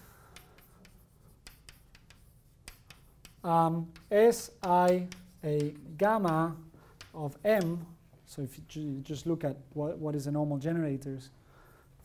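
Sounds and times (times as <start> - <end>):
chalk tapping and scratching: 0.0 - 8.2.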